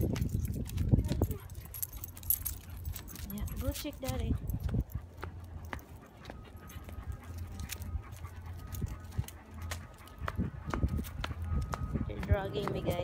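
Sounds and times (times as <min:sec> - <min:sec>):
collar tags jingling: 0:00.0 - 0:13.0
dog claws clicking on asphalt: 0:00.0 - 0:13.0
footsteps: 0:00.0 - 0:13.0.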